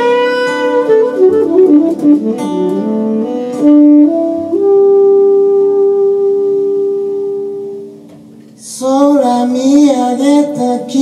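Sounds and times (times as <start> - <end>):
saxophone long note: 0.0 - 8.8.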